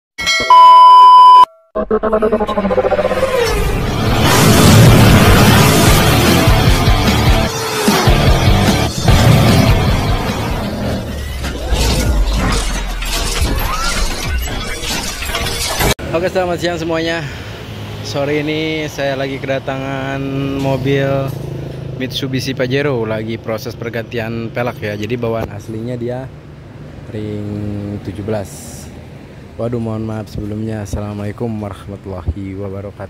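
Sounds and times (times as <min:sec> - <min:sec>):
steady test-tone beep: 0:00.4 - 0:01.7
intro music with heavy bass: 0:03.9 - 0:11.3
shattering glass effects: 0:09.0 - 0:16.0.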